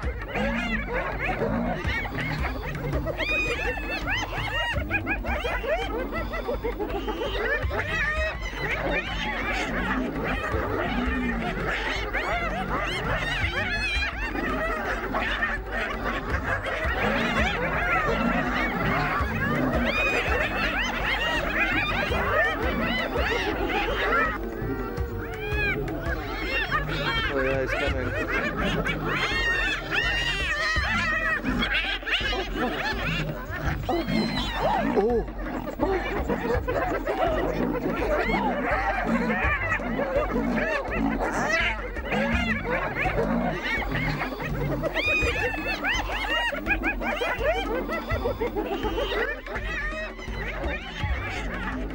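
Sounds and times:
hyenas giggling: 0.0s - 51.9s.

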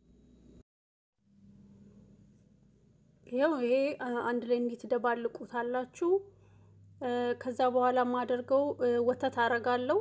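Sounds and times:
low steady hum: 1.2s - 10.0s
woman's voice: 3.3s - 6.3s, 7.0s - 10.0s.

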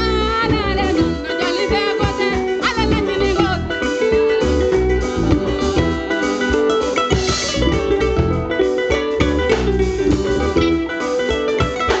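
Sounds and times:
bass guitar: 0.0s - 12.0s
drum kit: 0.0s - 12.0s
electric guitar: 0.0s - 12.0s
plucked kora: 0.0s - 12.0s.

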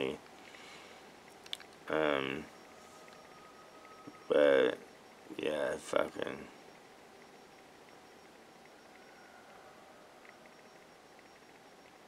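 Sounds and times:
tiny ticks: 1.3s - 1.8s.

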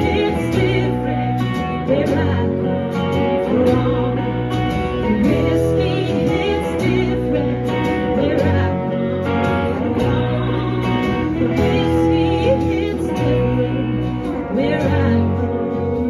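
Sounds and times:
acoustic guitar strumming: 0.0s - 16.0s
electric guitar: 0.0s - 16.0s
low bass notes: 0.0s - 16.0s
person singing: 0.0s - 16.0s.

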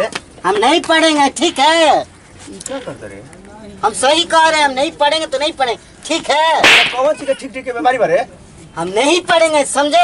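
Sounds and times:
whip-like swish: 6.6s - 7.0s.

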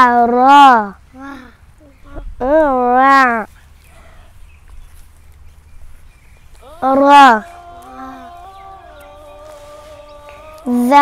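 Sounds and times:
quiet background singing: 3.4s - 11.0s
child calling out drawn-out syllable: 6.6s - 8.4s, 10.5s - 11.0s.

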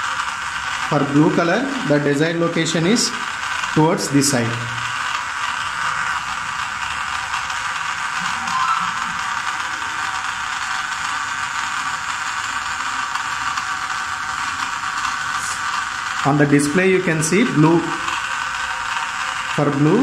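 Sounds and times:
small motor whirring: 0.0s - 20.0s.

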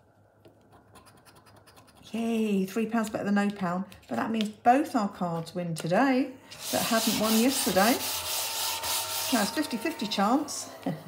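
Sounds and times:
plastic scratcher scratching scratchcard: 0.7s - 2.1s, 6.6s - 9.6s.

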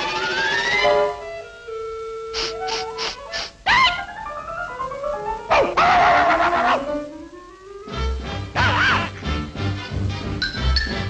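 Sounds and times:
cartoon orchestral music: 0.0s - 11.0s
puppy barking: 5.5s - 6.8s.

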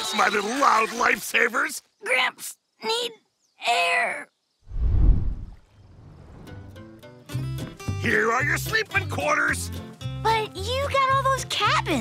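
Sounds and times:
plucked-string background music: 6.7s - 12.0s.

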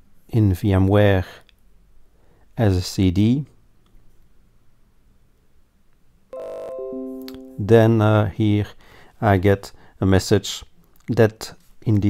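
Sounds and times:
notification chime descending tones: 6.4s - 8.2s.

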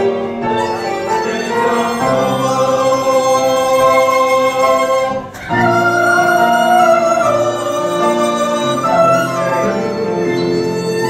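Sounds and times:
group singing held notes: 0.0s - 11.0s.

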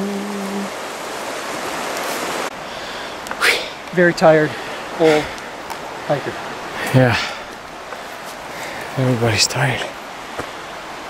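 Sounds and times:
river rapids hissing: 0.0s - 11.0s.

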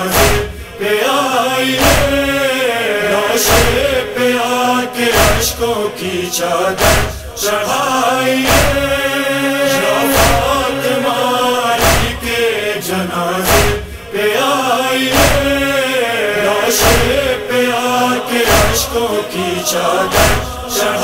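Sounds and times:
chorus of voices chanting: 0.0s - 21.0s
deep thumping beat: 0.1s - 0.6s, 6.8s - 7.3s, 11.8s - 12.2s, 13.5s - 13.9s.

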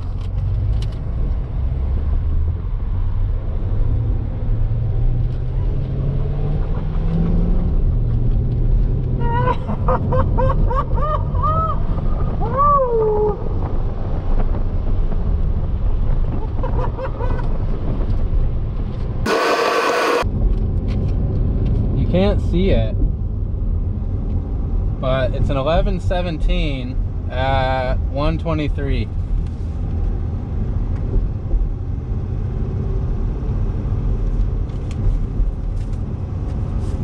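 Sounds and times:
car engine at full throttle: 19.3s - 20.2s
rising and falling high tones: 19.3s - 20.2s.

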